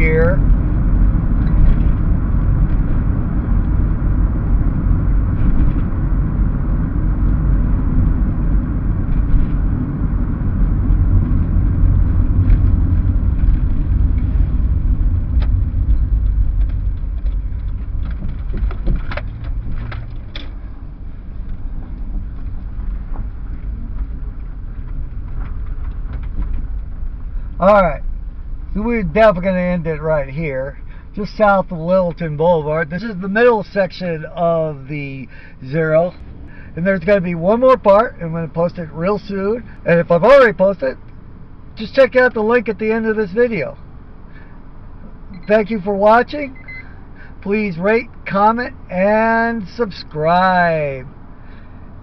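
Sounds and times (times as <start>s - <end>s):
car engine and tyre rumble: 0.0s - 52.0s.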